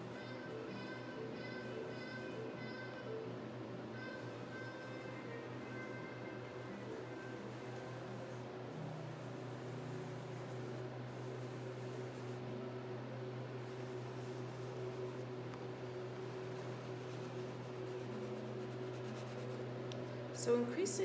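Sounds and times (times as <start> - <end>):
low room hum: 0.0 - 21.0
pastel rubbing on paper: 13.6 - 15.4, 16.4 - 19.7.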